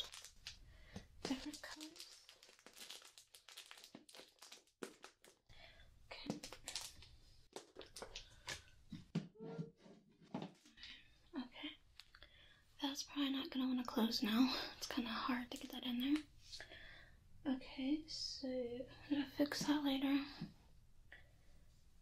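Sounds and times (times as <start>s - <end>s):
plastic packet crinkling: 0.0s - 0.6s, 1.2s - 5.5s, 6.2s - 8.7s.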